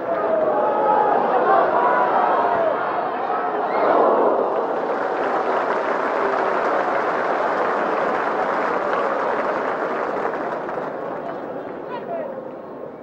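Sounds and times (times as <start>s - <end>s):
stadium crowd cheering and applauding: 0.0s - 12.0s.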